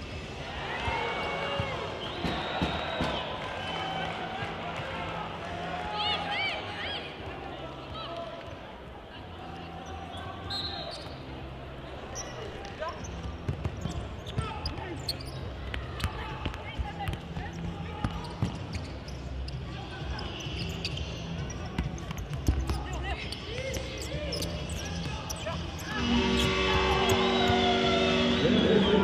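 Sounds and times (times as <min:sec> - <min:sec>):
shoe squeaks: 0:09.8 - 0:11.3, 0:13.0 - 0:16.3, 0:18.2 - 0:27.6
players shouting: 0:23.5 - 0:29.0
loud held tones: 0:25.9 - 0:29.0.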